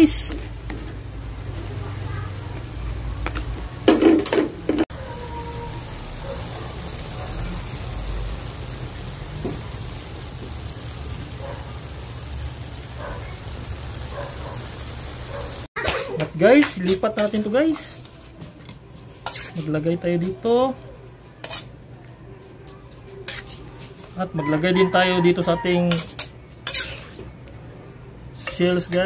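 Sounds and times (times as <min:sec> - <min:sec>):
stir-fry sizzling in a wok: 0:00.0 - 0:29.0.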